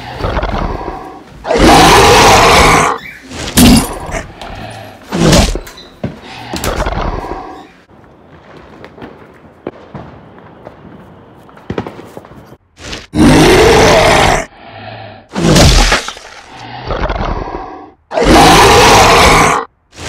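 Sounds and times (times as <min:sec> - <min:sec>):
monster roars: 0:00.0 - 0:03.0, 0:13.1 - 0:14.5, 0:16.5 - 0:19.7.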